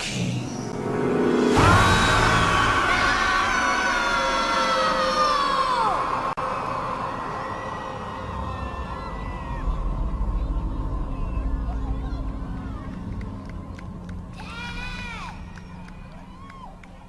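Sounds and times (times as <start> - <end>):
sustained dramatic chord: 0.6 - 8.4
low rumbling: 5.9 - 17.0.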